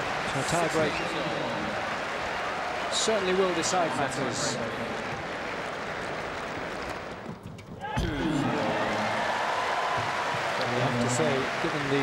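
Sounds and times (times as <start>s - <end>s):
crowd applauding: 0.0s - 7.3s, 8.1s - 12.0s.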